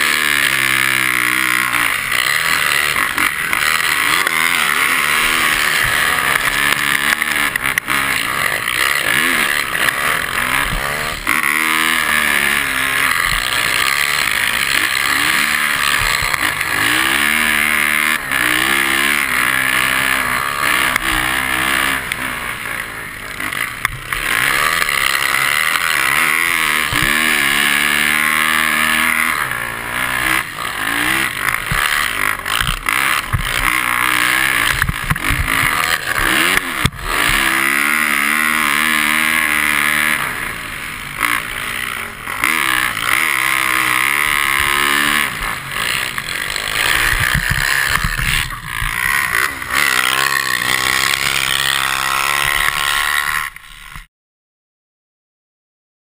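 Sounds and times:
dirt bike engine revving: 0.0s - 54.1s.

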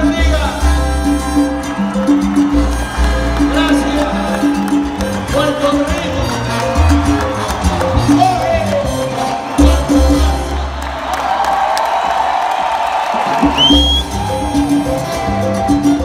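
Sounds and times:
salsa orchestra playing: 0.0s - 11.2s, 13.2s - 16.0s
short rising whistle: 13.5s - 14.9s.

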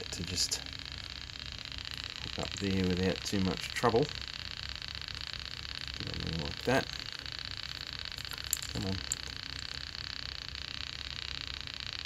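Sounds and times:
fast even buzz: 0.0s - 12.0s
low hum: 0.0s - 12.0s.

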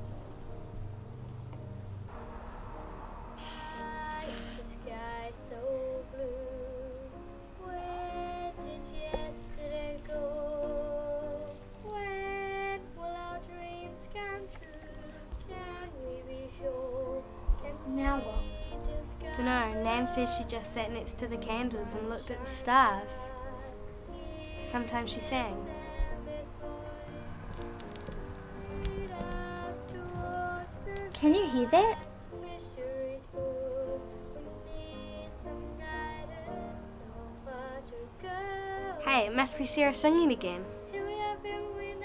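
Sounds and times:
sustained keyboard chords: 0.0s - 42.0s
woman singing with vibrato: 3.4s - 27.6s, 28.5s - 42.0s.

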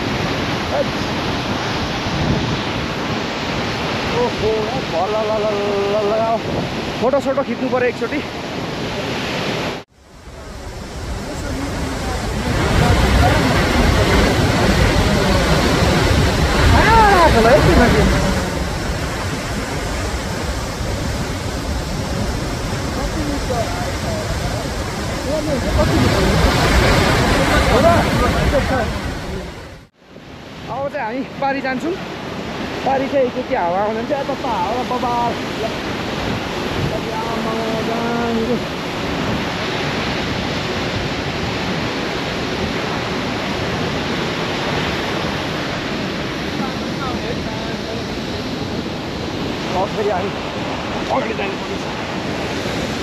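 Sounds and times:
waterfall rushing: 0.0s - 53.0s
person's voice: 11.2s - 18.7s, 22.9s - 29.6s, 32.8s - 35.8s, 36.8s - 38.7s, 51.0s - 52.1s.

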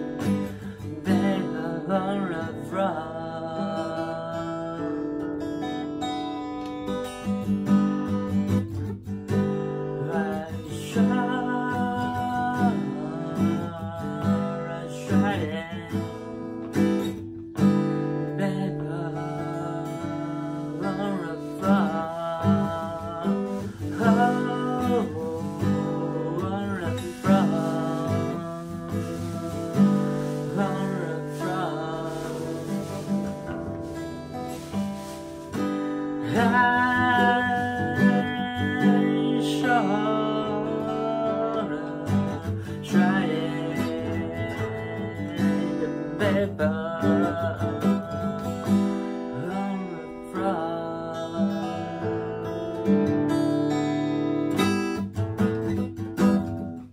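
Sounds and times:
man singing: 0.0s - 6.0s, 7.2s - 53.9s
strummed acoustic guitar: 0.0s - 56.9s.

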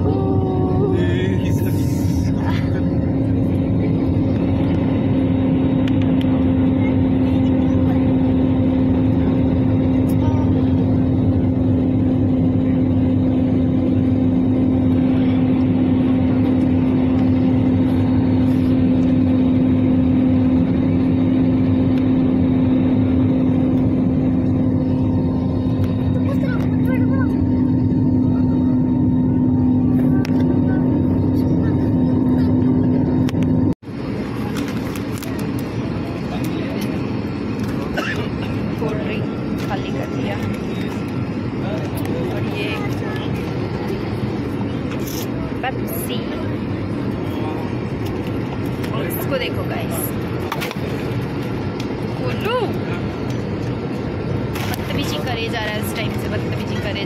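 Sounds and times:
jet engine drone in cabin: 0.0s - 57.0s.

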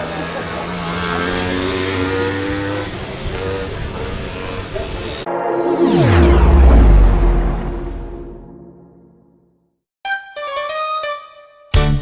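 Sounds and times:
dirt bike engine accelerating: 0.0s - 7.6s.

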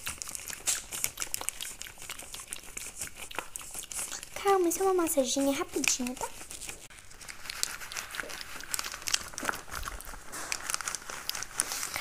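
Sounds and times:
rubber glove crinkling plastic sheet: 0.0s - 12.0s.

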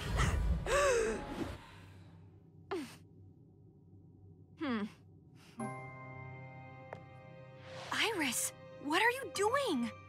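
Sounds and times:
woman sighing: 4.6s - 5.0s.

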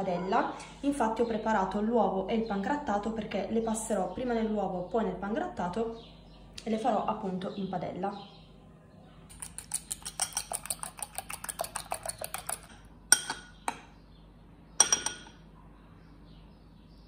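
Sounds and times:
spoon clinking against ceramic bowl: 9.3s - 13.8s, 14.8s - 15.4s.

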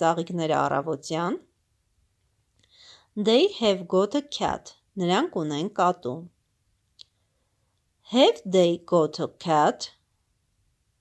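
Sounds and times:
person speaking: 0.0s - 1.5s, 3.2s - 6.4s, 8.1s - 10.0s.

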